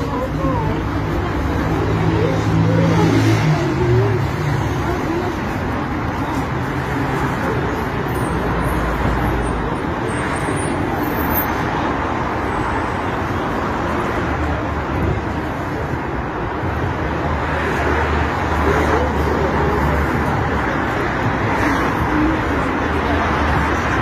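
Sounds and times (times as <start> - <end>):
people talking: 0.0 - 9.9, 16.8 - 24.0
road traffic noise: 0.0 - 24.0.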